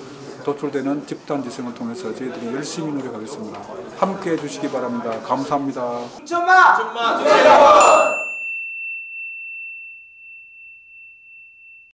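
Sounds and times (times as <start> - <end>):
bell-like chime ringing: 7.7 - 12.0.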